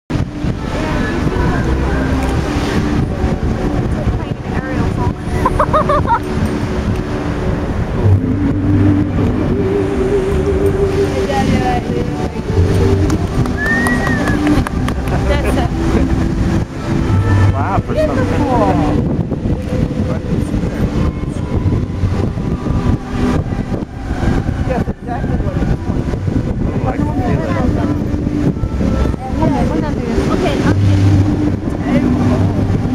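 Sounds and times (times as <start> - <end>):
crowd chatter: 0.1 - 32.9
low street rumble: 0.1 - 32.9
music over loudspeakers: 0.1 - 32.9
water jets rushing: 0.1 - 32.9
wind on microphone: 0.1 - 32.9.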